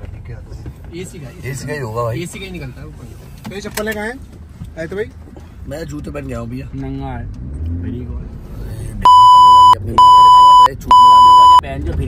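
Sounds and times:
censor bleep: 9.1s - 11.6s.

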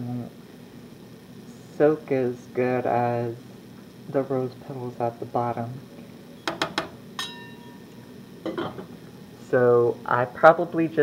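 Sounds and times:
metal spoon clinking on saucepan: 6.4s - 8.8s.

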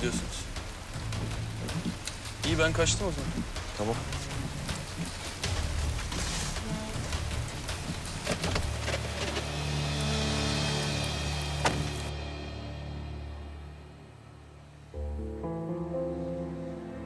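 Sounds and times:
rain on car roof: 0.0s - 12.1s
soft music with held tones: 0.0s - 17.0s.

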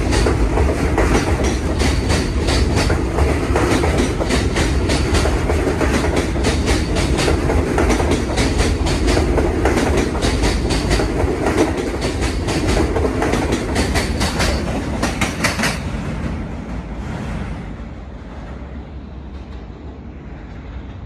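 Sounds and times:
train wheels clicking over rail joints: 0.0s - 17.7s
subway train rumble: 0.0s - 21.0s.

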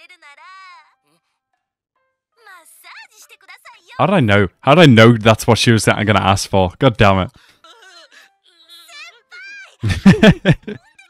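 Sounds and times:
high-pitched girl's voice whining: 7.6s - 9.8s.

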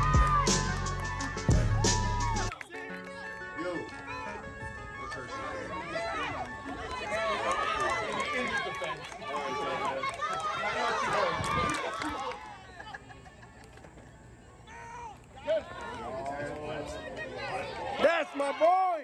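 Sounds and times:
crowd shouting and cheering: 0.0s - 12.8s, 14.6s - 19.0s.

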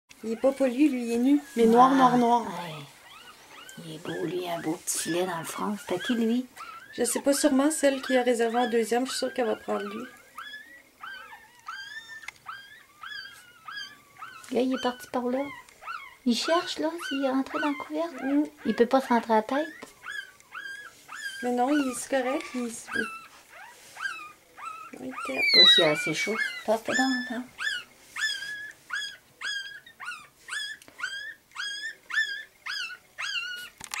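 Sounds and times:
puppy squeaking and whimpering: 0.2s - 34.0s.

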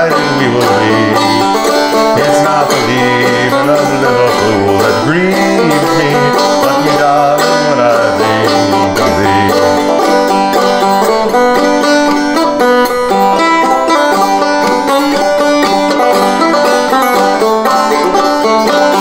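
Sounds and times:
banjo playing folk melody: 0.0s - 19.0s.

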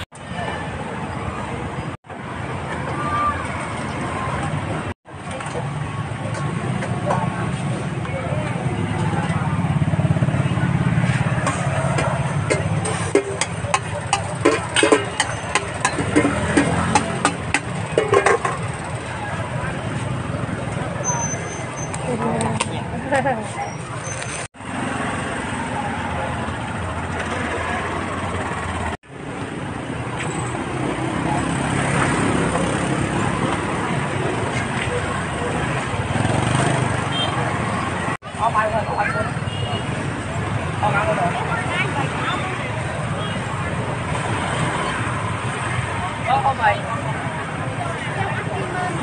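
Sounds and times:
crowd of voices: 0.0s - 49.0s
motor traffic hum: 0.0s - 49.0s.

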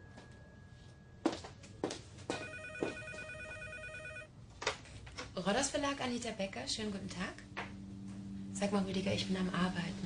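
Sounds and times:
telephone ringing with electronic trill: 2.3s - 4.3s.

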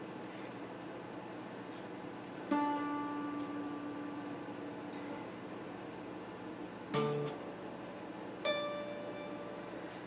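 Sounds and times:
electric guitar note ringing: 2.5s - 5.1s, 6.9s - 7.5s, 8.4s - 10.0s.

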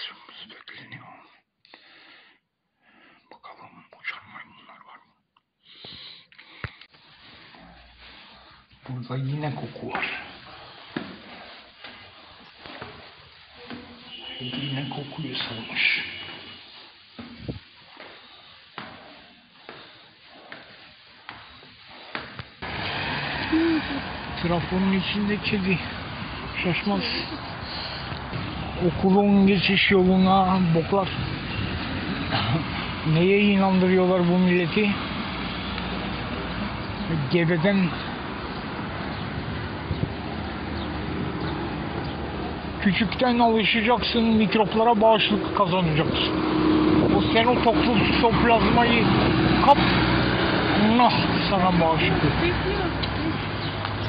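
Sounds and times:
traffic hiss: 5.7s - 54.0s
faint footsteps: 6.6s - 25.1s, 25.9s - 30.3s.

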